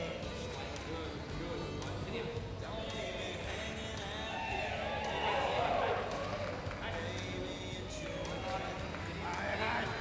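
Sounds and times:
faint background music: 0:00.0 - 0:10.0
indistinct voices: 0:00.0 - 0:10.0.

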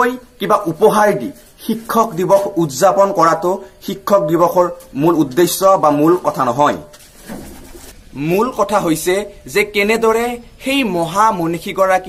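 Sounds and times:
man speaking: 0:00.0 - 0:06.9, 0:08.1 - 0:12.0.

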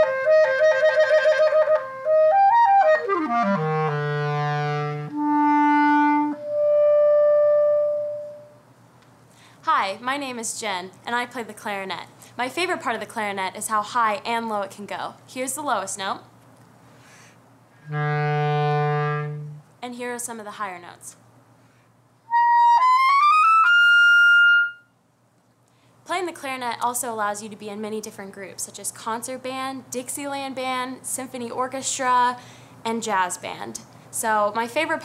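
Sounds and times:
clarinet sustained note: 0:00.0 - 0:08.6, 0:17.8 - 0:19.7, 0:22.3 - 0:24.9.

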